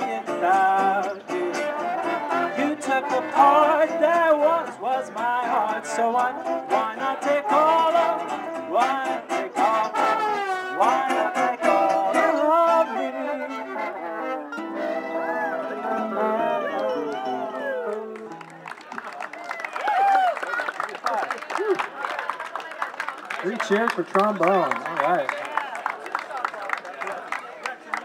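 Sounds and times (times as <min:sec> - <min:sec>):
string band with trombones: 0:00.0 - 0:18.4
crowd cheering and clapping: 0:15.1 - 0:28.0.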